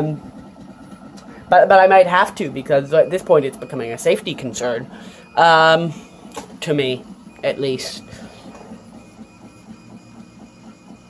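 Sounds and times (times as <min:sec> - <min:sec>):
stepper motors pulsing rhythmically: 0:00.0 - 0:11.0.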